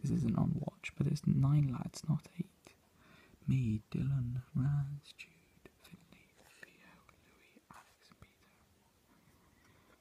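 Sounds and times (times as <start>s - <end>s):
person whispering faintly: 3.5s - 8.8s.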